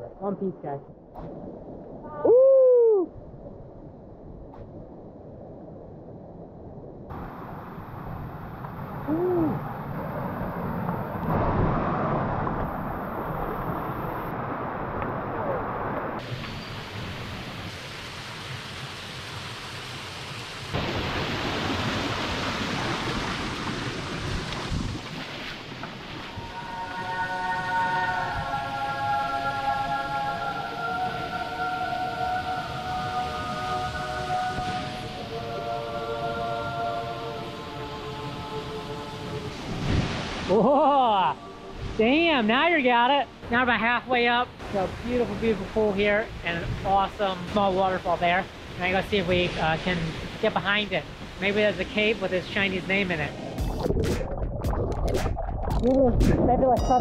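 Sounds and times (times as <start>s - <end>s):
mountain stream and waterfall: 12.3s - 53.9s
soft background music: 26.3s - 39.8s.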